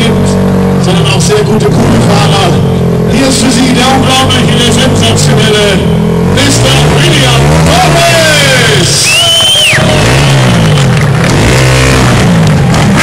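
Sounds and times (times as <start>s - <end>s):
dirt bike engines revving: 0.0s - 13.0s.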